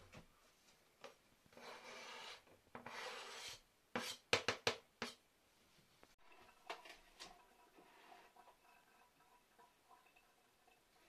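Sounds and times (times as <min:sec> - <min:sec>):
knife scraping plastic cutting board: 0:01.6 - 0:04.3.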